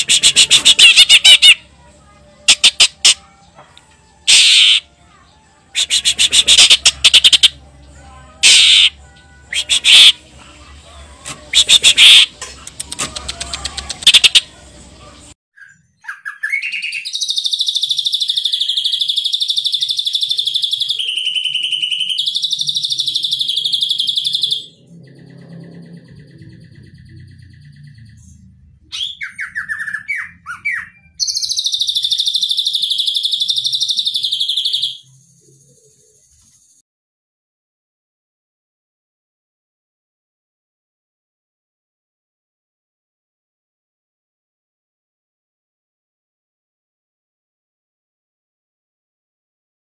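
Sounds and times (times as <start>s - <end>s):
bird sharp calls: 0.0s - 1.6s, 4.3s - 4.8s, 5.8s - 7.6s, 8.4s - 10.2s, 11.5s - 12.3s
bird high trilled song: 4.3s - 4.8s, 5.8s - 7.6s, 8.4s - 10.2s, 15.6s - 36.8s.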